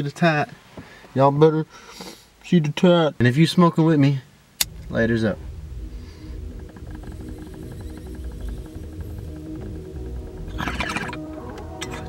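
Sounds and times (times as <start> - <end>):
low hum: 4.6 - 12.0
water bong bubbling: 4.6 - 12.0.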